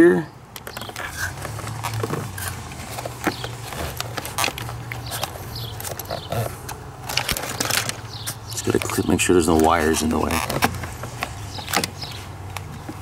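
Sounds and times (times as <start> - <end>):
plastic and wire handling clicks: 0.5 - 13.0.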